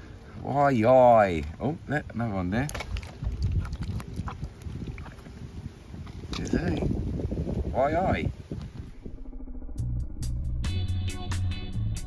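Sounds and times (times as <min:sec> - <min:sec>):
water sloshing in a metal bowl: 0:02.5 - 0:05.5.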